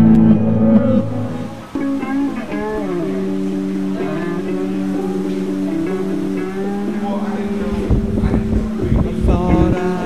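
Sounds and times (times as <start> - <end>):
instrumental soundtrack music: 0.0 - 10.0.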